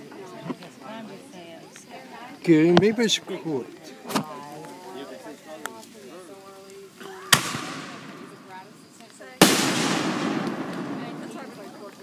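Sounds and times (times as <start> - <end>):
firework hiss: 7.2 - 12.0
firework shells bursting: 7.3 - 12.0.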